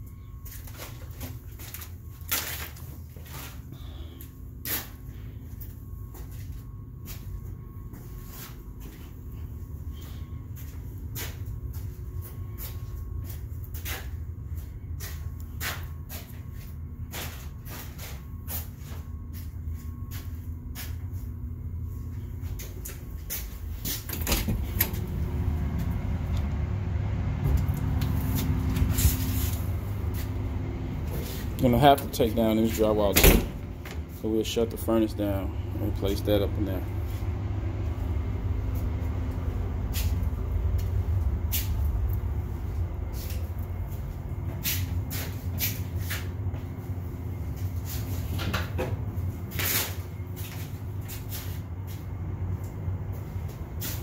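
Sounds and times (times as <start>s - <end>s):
low mechanical hum: 0.0s - 54.0s.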